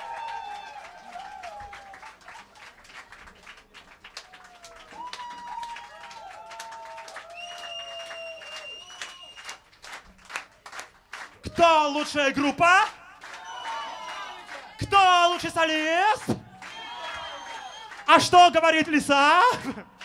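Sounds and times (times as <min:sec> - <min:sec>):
people cheering: 0:00.0 - 0:09.6, 0:11.4 - 0:20.0
audience clapping: 0:00.0 - 0:20.0.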